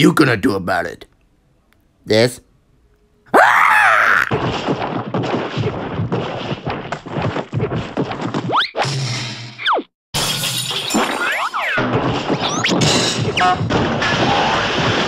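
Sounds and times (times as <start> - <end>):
cartoon crashes smacks and thuds: 4.2 - 9.1, 10.2 - 15.0.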